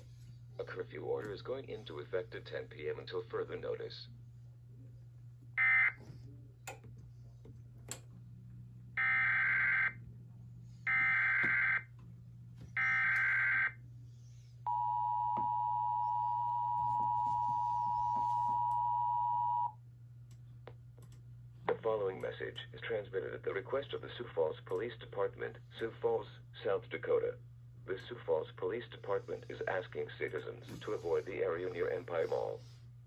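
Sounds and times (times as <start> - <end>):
steady low hum: 0.0 - 33.0
two-tone attention signal: 14.7 - 19.7.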